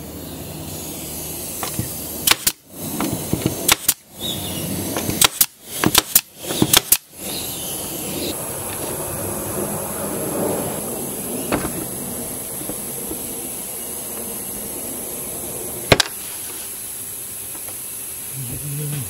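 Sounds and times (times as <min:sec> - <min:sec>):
steady background noise: 0:00.0 - 0:19.0
nail gun firing into wood: 0:01.6 - 0:04.1, 0:05.0 - 0:07.1, 0:15.9 - 0:16.2.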